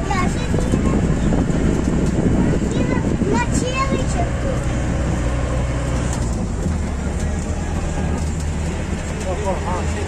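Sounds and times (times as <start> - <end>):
faint passenger voices: 0.0 - 5.6, 6.2 - 10.0
road train rumbling: 0.0 - 10.0.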